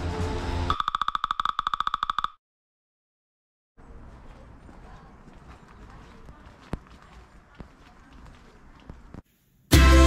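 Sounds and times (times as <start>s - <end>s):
sharp clicks: 0.7s - 2.4s
footsteps on pavement: 3.8s - 9.3s
outdoor ambience: 3.8s - 9.8s.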